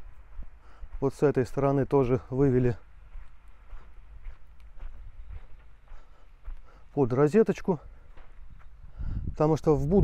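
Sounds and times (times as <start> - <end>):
steady low rumble: 0.0 - 6.7
footsteps on sandy ground: 0.0 - 10.0.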